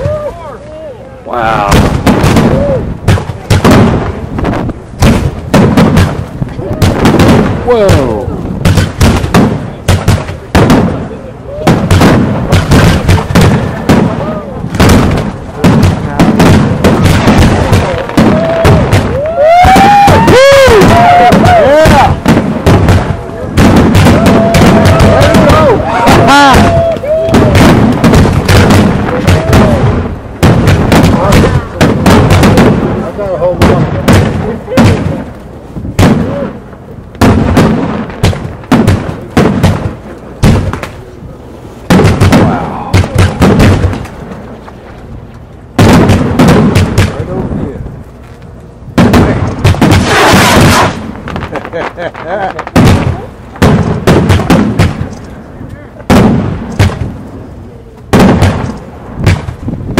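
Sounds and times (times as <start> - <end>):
firework shells bursting: 1.6 - 59.9
firework whistling: 11.5 - 32.8, 49.1 - 55.3.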